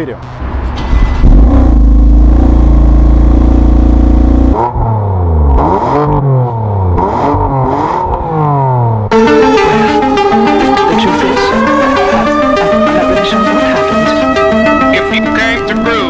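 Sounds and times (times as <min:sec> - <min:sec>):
car exhaust idling and revving: 0:00.4 - 0:16.0.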